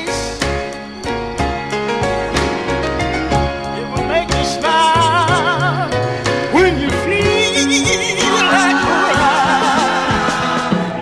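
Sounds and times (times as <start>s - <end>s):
bass: 0.0s - 11.0s
drums: 0.0s - 11.0s
organ-like chords: 0.0s - 11.0s
person singing with vibrato: 3.2s - 11.0s.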